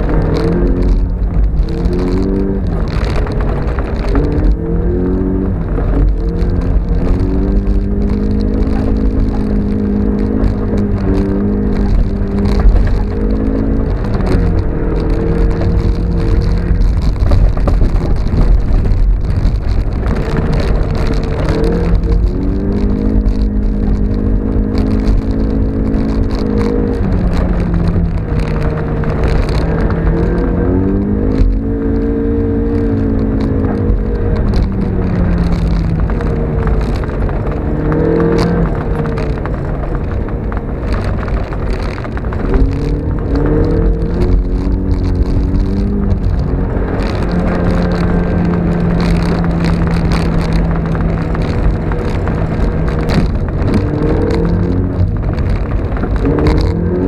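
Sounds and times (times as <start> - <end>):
car engine revving: 0.0 - 57.0
tyre and road noise: 0.0 - 57.0.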